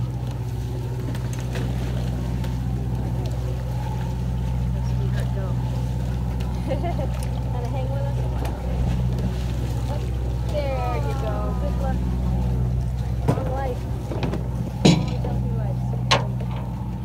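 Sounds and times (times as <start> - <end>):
boat engine humming: 0.0 - 17.0
sharp knocks: 14.8 - 15.3.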